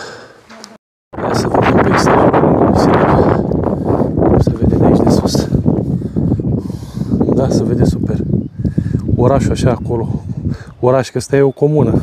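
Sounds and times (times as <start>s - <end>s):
wind buffeting microphone: 1.2s - 12.0s.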